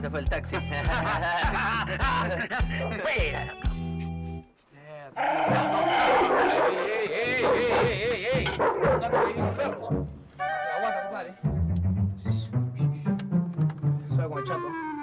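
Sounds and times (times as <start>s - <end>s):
background music: 0.0s - 4.5s, 5.3s - 15.0s
dogs vocalising: 5.2s - 10.0s.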